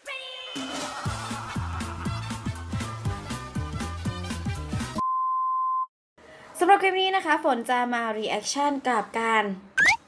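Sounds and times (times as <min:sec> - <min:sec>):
high-pitched electronic beep: 0:09.8 - 0:10.0.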